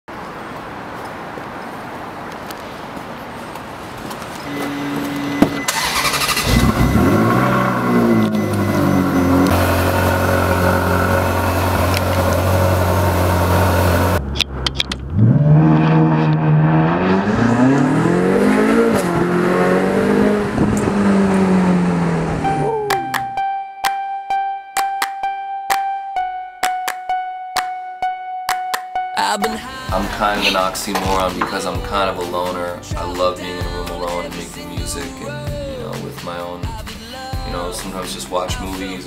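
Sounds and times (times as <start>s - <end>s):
sports car engine revving: 4.5s - 14.4s, 15.0s - 22.6s.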